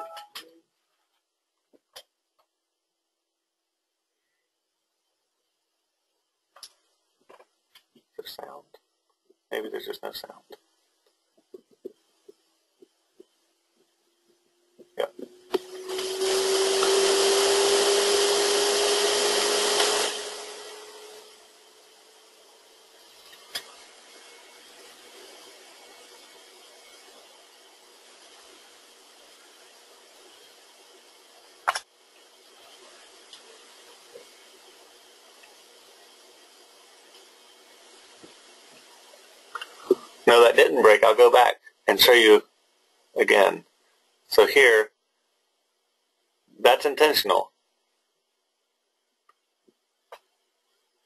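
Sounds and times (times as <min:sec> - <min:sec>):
faint steady hiss: 0:00.0 - 0:51.0.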